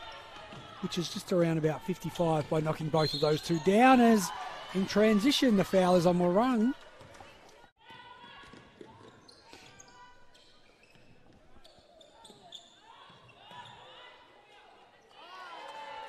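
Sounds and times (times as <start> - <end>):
players calling out: 0.5 - 6.8
shoes squeaking on hardwood floor: 8.5 - 14.1.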